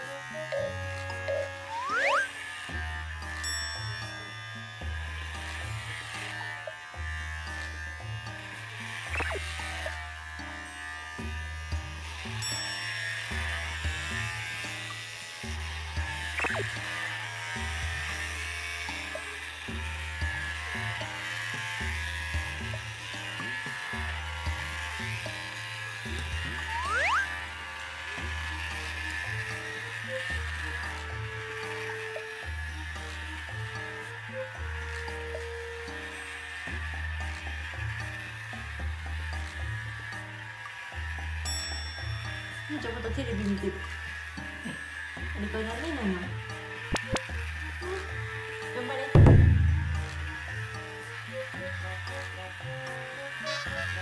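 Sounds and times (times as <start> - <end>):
electric pet clippers buzzing: 0.0 - 54.0
background music with bass: 44.6 - 54.0.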